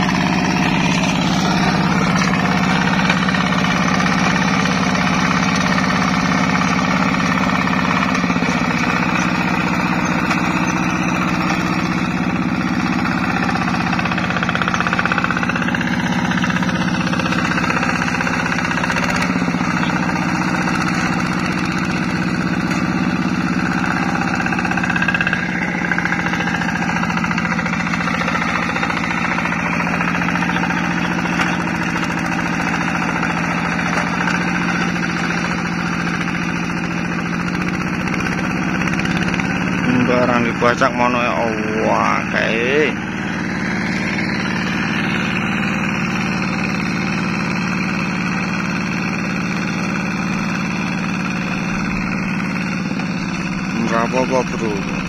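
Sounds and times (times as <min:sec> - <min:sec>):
diesel engine knocking chug: 0:00.0 - 0:55.0.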